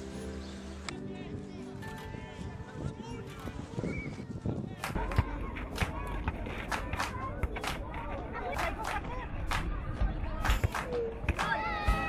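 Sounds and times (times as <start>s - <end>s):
children shouting: 10.9s - 12.0s.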